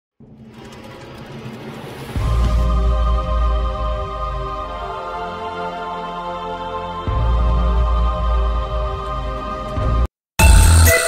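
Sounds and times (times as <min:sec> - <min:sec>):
noisy synthesized swell: 0:00.2 - 0:06.0.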